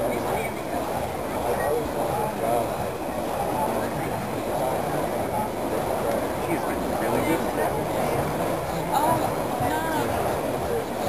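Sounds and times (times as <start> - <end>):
distant voices chattering: 0.0 - 11.0
low rumbling background noise: 0.0 - 11.0.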